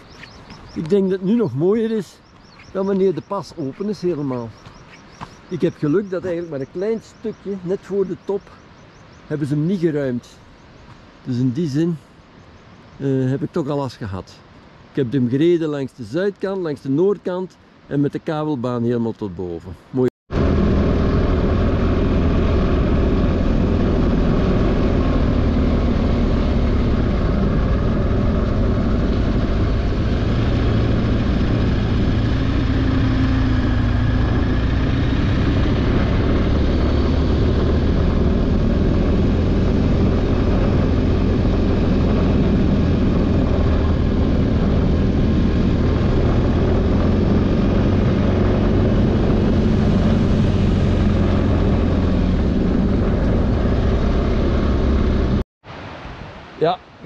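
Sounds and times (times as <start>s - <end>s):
wind noise: 0.0s - 13.5s, 20.3s - 57.0s
motorcycle engine running: 20.3s - 55.4s.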